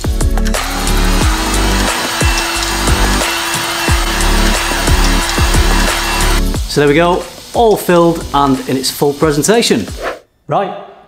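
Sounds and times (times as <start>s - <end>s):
background music with steady beat: 0.0s - 10.4s
heat gun blowing: 0.5s - 6.6s.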